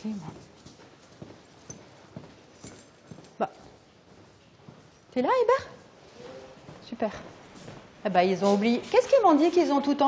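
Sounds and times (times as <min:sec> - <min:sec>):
footsteps on tiled floor: 0:00.0 - 0:10.0.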